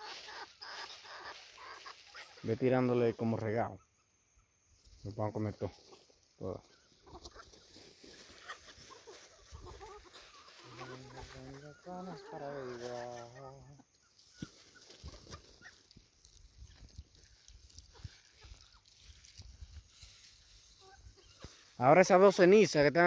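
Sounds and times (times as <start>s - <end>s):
pecking on the ground: 0.0s - 2.5s, 4.7s - 21.8s
chickens clucking: 0.0s - 22.9s.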